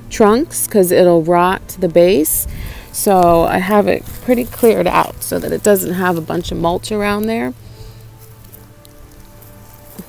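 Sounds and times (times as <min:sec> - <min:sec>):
low steady rumble: 0:00.0 - 0:10.0
wood-chip mulch crackling under hand: 0:02.8 - 0:10.0.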